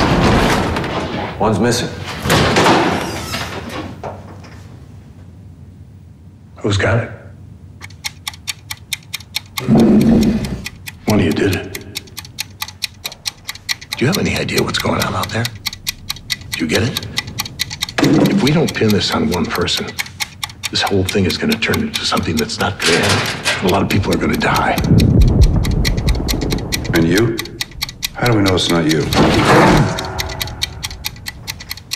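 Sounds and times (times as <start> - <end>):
fast clock-like ticking: 7.8 - 31.9
deep low boom: 24.8 - 27.6.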